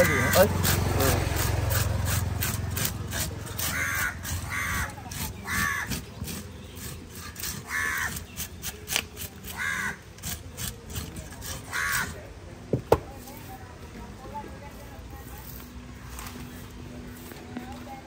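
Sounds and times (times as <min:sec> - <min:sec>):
crow cawing: 0:00.0 - 0:00.6, 0:03.6 - 0:06.0, 0:07.6 - 0:08.2, 0:09.5 - 0:10.0, 0:11.7 - 0:12.2
scaler scraping fish scales: 0:00.0 - 0:12.2.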